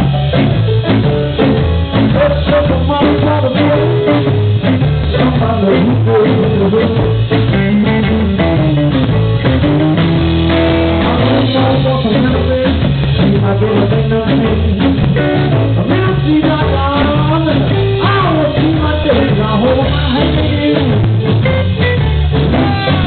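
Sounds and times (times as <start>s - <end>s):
blues band playing: 0.0s - 23.0s.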